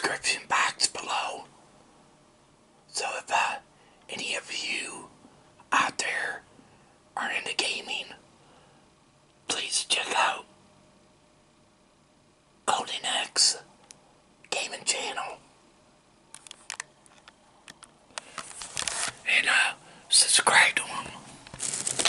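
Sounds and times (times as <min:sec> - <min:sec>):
person whispering: 0:00.0 - 0:01.5, 0:02.9 - 0:06.5, 0:07.2 - 0:08.2, 0:09.5 - 0:10.5, 0:12.7 - 0:13.7, 0:14.5 - 0:15.4, 0:19.2 - 0:21.3.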